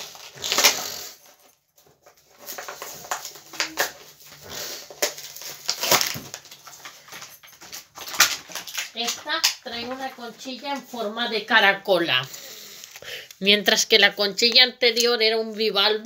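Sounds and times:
toy can packaging clicks and scrapes: 0.0 - 1.2, 7.8 - 10.2.

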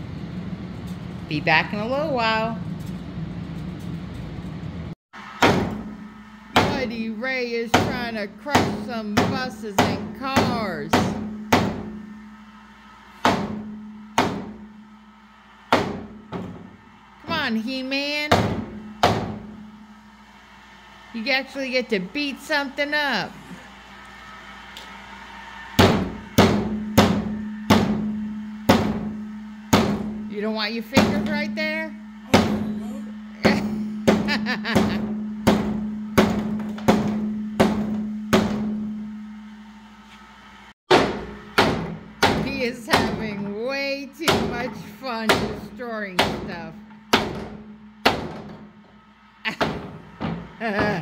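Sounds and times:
mallet striking a board: 5.4 - 6.0, 7.8 - 12.0, 13.2 - 14.6, 15.7 - 16.6, 18.3 - 19.5, 25.8 - 28.1, 28.7 - 30.2, 32.3 - 32.6, 33.4 - 38.8, 40.9 - 43.2, 46.2 - 48.6.

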